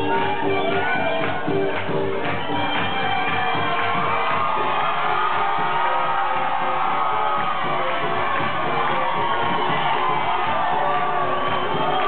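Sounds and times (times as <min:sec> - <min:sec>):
crowd cheering and whooping: 0:00.0 - 0:12.0
jazz band with horns: 0:00.0 - 0:12.0.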